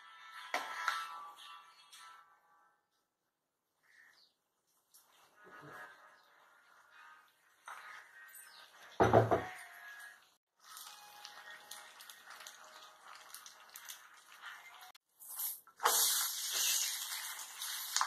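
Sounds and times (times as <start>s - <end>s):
batter sizzling in oil: 9.9s - 18.0s.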